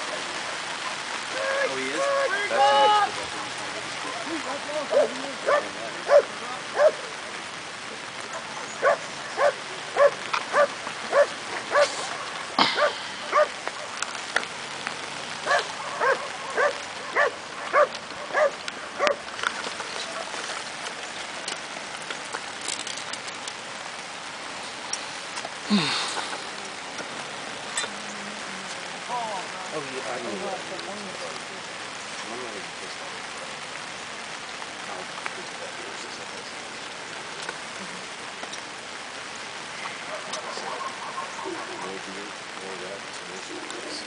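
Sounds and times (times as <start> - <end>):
rain falling: 0.0 - 44.0
dog barking: 4.9 - 7.0, 8.3 - 13.9, 15.4 - 19.2, 40.0 - 42.0.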